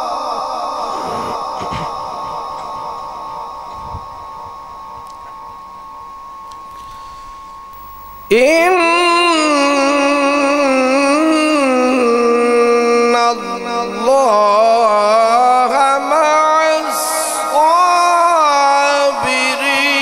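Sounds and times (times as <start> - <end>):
faint steady tone: 0.4 - 10.1
man chanting through loudspeakers: 8.3 - 20.0.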